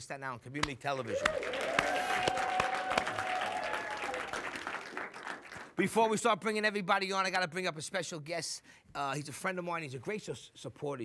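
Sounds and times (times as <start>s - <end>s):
audience applauding: 1.0s - 5.8s
long held cheer: 1.1s - 5.2s.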